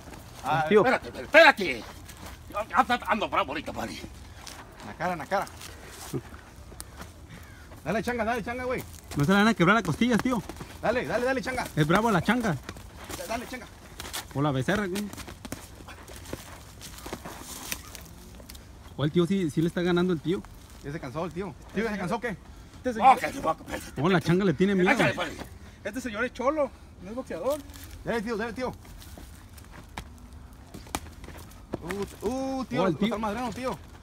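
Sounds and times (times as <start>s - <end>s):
footwork scuffs on dirt: 0.0s - 25.6s, 27.3s - 34.0s
low background noise: 0.0s - 34.0s.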